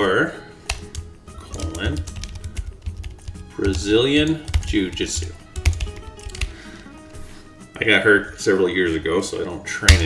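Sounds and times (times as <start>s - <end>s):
keyboard typing: 0.7s - 6.6s.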